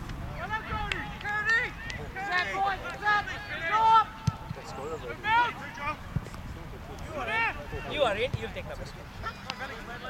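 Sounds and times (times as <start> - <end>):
players shouting: 0.4 - 6.0.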